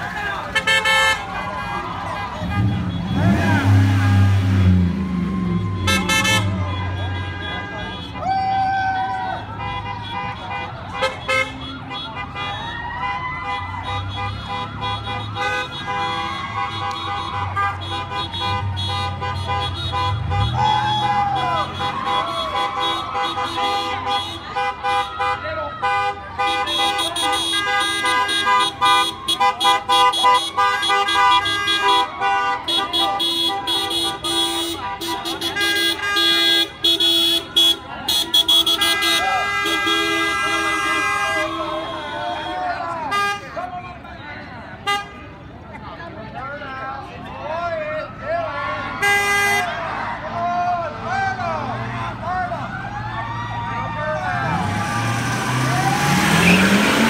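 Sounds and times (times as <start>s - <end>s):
car and truck horns honking: 0.0s - 45.6s, 48.6s - 50.3s, 54.2s - 57.0s
people calling out: 0.0s - 57.0s
vehicle engine rumbling: 0.0s - 57.0s.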